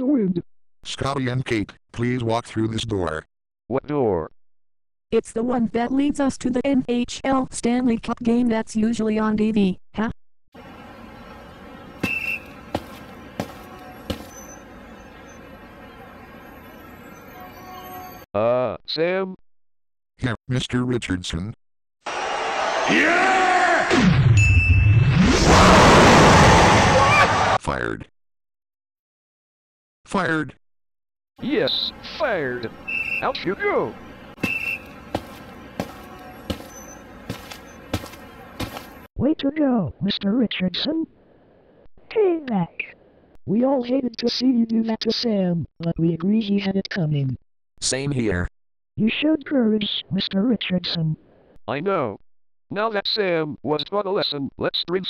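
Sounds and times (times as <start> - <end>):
cartoon footstep taps: 12.0 - 14.3, 34.4 - 39.0
high squeak: 12.0 - 15.4, 16.9 - 18.2, 34.4 - 37.9.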